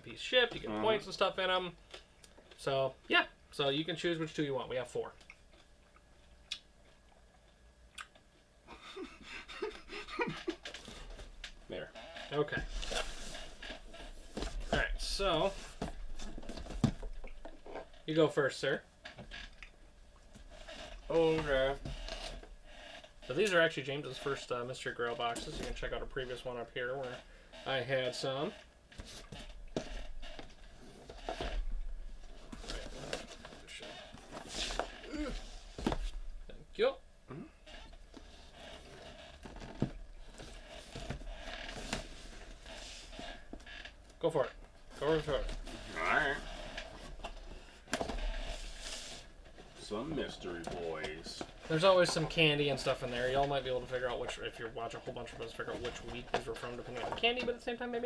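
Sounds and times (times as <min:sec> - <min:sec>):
cardboard boxes rustling: 0:12.5 - 0:17.6, 0:29.0 - 0:36.4, 0:44.9 - 0:54.2.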